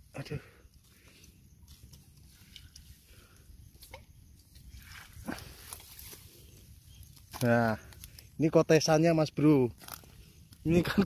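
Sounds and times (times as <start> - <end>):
rustling through long grass: 0.7 - 8.7.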